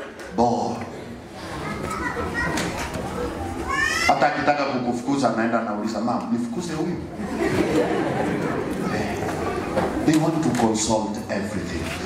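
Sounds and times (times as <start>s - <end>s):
murmur of voices: 0.0s - 12.0s
children talking and calling out: 1.3s - 4.9s, 8.3s - 10.2s.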